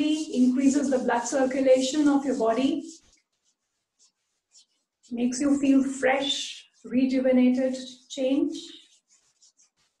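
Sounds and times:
hands rustling over clothing: 0.0 - 7.0, 8.7 - 10.0.

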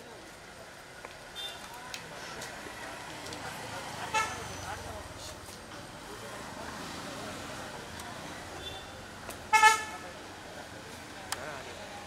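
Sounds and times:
people talking: 0.0 - 12.0
road traffic: 0.0 - 12.0
vehicle horn toot: 9.5 - 10.0.

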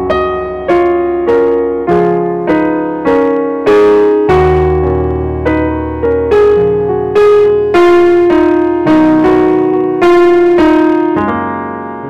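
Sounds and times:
digital piano block chords: 0.0 - 12.0
low piano bass notes: 0.0 - 12.0.

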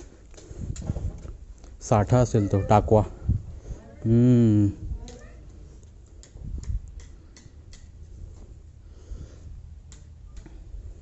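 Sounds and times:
sharp evenly spaced clicks: 5.8 - 8.1, 9.8 - 10.8.

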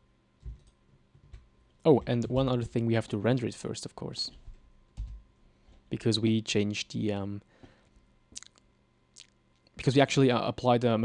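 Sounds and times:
man speaking: 1.8 - 4.4, 5.9 - 7.4, 9.8 - 11.0.

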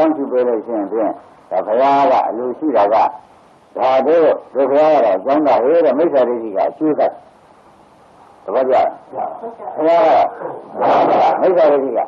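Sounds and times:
man preaching: 0.0 - 3.2, 3.8 - 7.2, 8.5 - 12.0
faint hiss: 0.0 - 12.0.

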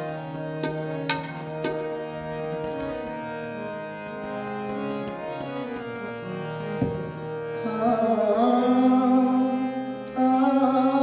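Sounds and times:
harmoniums playing held notes: 0.0 - 11.0.

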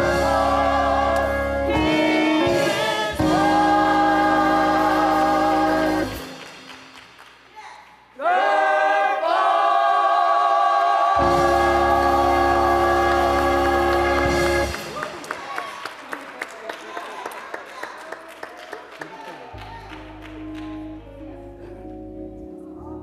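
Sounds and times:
gospel choir singing held chords: 0.0 - 6.9, 8.2 - 15.0
low accompaniment: 0.0 - 7.0, 11.2 - 15.2, 19.6 - 23.0.

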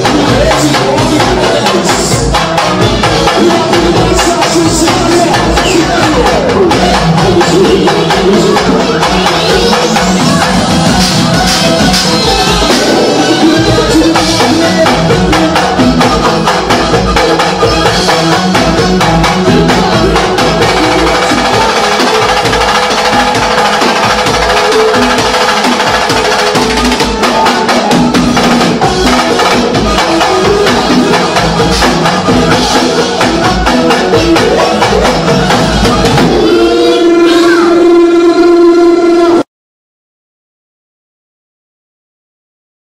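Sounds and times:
band playing percussion-driven music: 0.0 - 39.4.

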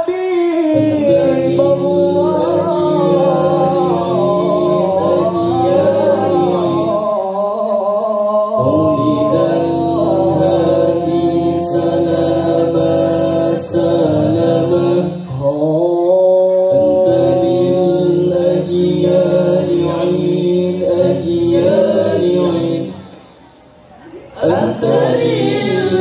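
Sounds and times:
voices singing devotional song: 0.0 - 26.0.

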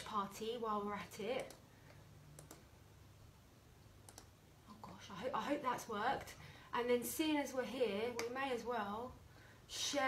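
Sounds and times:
low steady hum: 0.0 - 10.0
faint sharp clicks: 4.0 - 5.0.

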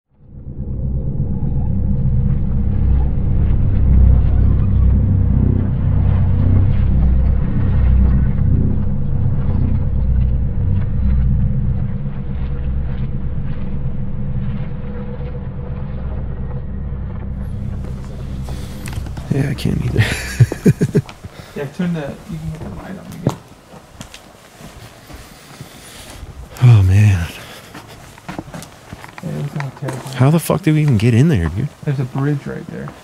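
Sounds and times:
low rumbling drone: 0.1 - 21.6.

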